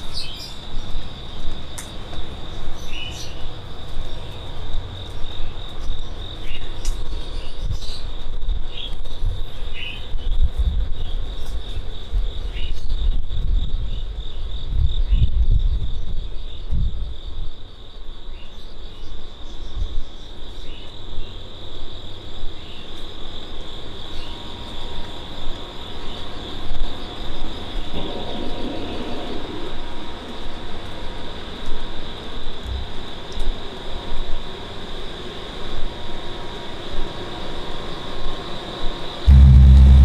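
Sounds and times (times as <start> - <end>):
insects chirring: 0.0 - 40.0
low rumble: 39.3 - 40.0.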